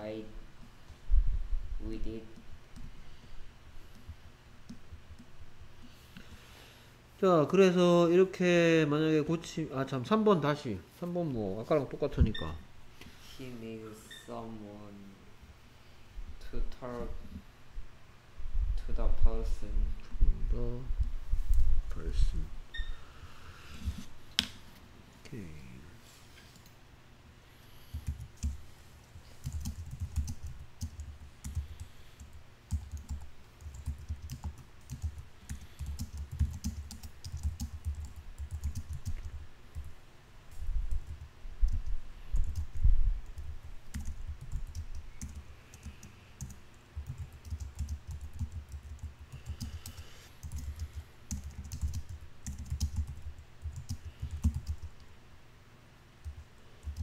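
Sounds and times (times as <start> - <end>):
typing on a computer keyboard: 28.0 - 28.6, 29.4 - 39.9, 43.9 - 55.0, 56.2 - 57.0.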